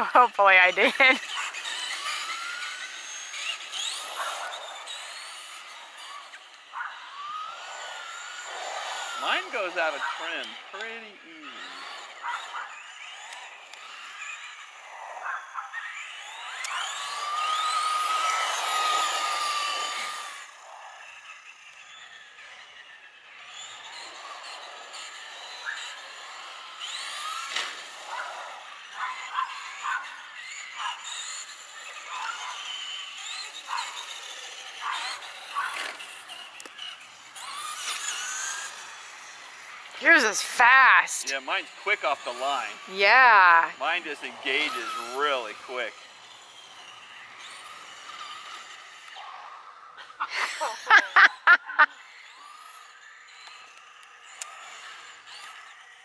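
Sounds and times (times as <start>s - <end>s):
rc truck motors whining: 0.0s - 56.0s.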